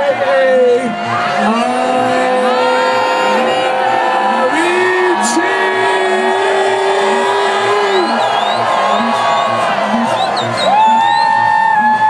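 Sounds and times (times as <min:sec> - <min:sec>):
house music over loudspeakers: 0:00.0 - 0:12.0.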